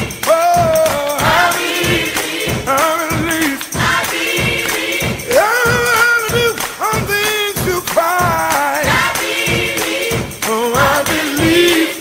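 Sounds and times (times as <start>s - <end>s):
gospel voices singing over a beat: 0.0s - 12.0s.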